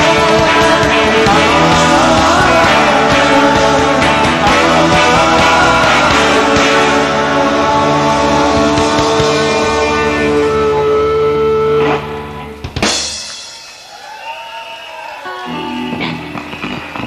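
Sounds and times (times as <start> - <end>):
rock band playing live: 0.0 - 17.0.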